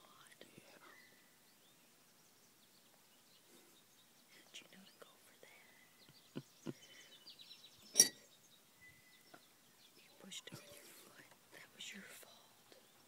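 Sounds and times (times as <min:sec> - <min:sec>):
metal spoon clinking ceramic mug: 0:08.0 - 0:08.2.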